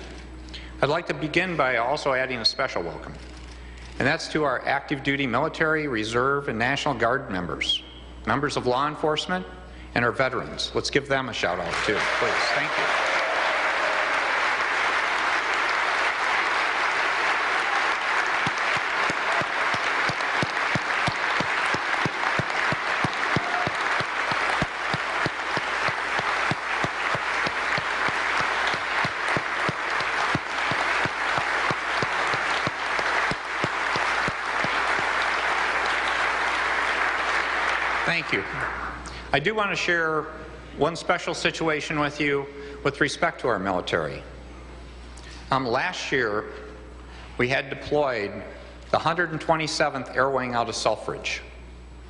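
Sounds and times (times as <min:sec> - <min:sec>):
audience applause in echoing hall: 0:11.6 - 0:39.0.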